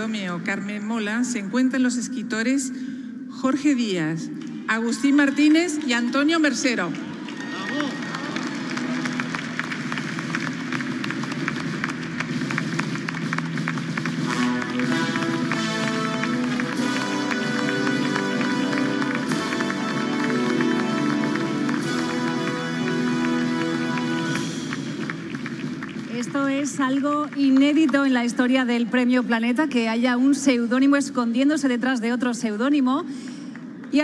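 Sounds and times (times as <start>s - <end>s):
audience applauding: 5.0s - 28.8s
music with sustained chords: 8.4s - 26.0s.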